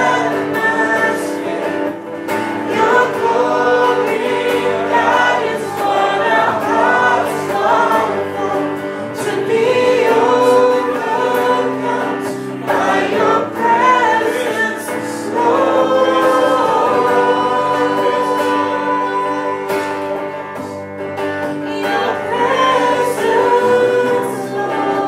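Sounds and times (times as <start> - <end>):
electric guitar: 0.0 - 25.0
woman singing through speaker: 13.1 - 20.0.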